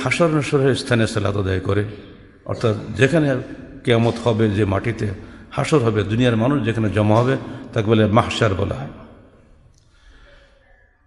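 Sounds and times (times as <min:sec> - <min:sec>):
man breathing at microphone: 0:09.8 - 0:10.7.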